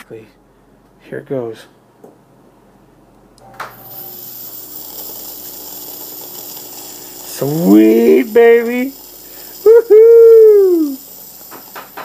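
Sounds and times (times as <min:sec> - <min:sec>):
faint hum: 0:00.0 - 0:11.9
fog machine hissing: 0:03.6 - 0:12.0.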